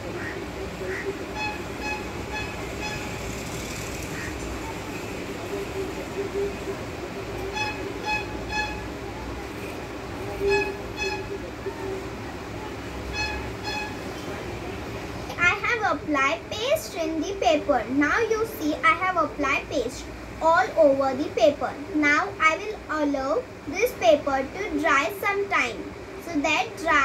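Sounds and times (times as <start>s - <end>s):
steady background hum: 0.0s - 27.0s.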